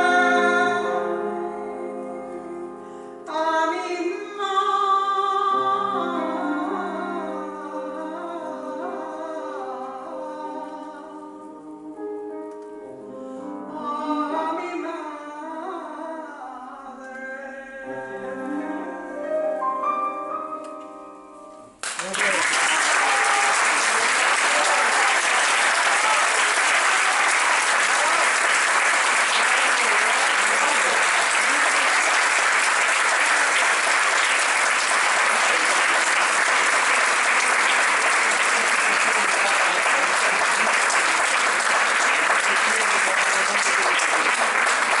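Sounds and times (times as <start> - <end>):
audience applauding: 21.8 - 45.0.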